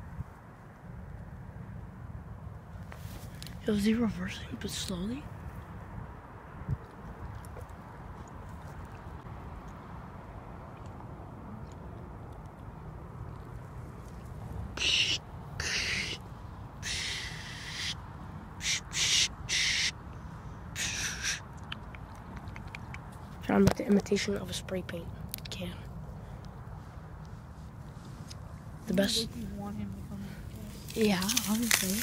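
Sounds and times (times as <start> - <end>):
person imitating spray can hisses: 14.8 - 16.2, 16.8 - 18.0, 18.6 - 19.9, 20.8 - 21.4.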